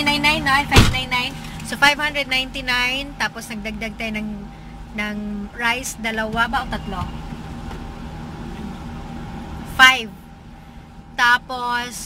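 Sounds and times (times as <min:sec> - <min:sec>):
car engine rumble in cabin: 0:00.0 - 0:12.0.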